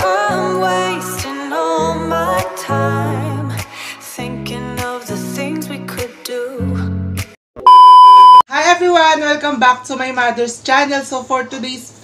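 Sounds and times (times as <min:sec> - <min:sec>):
loud electronic beep: 0:07.7 - 0:08.4.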